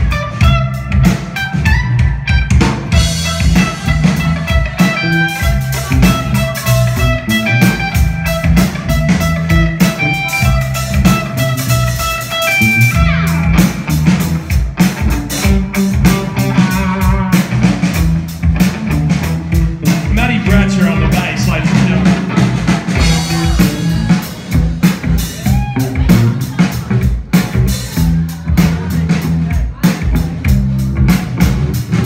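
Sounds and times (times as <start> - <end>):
bass guitar: 0.0 - 32.0
drum kit: 0.0 - 32.0
electric guitar: 0.0 - 32.0.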